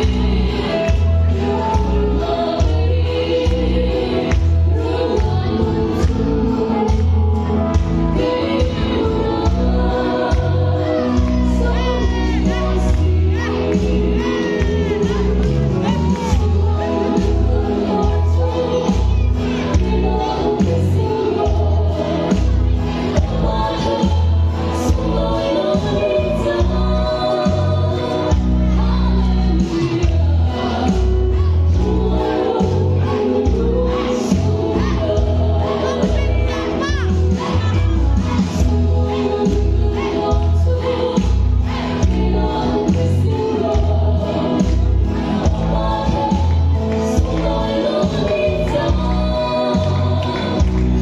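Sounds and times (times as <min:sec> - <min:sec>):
backing music with deep bass: 0:00.0 - 0:51.0
woman singing into microphone: 0:00.0 - 0:51.0.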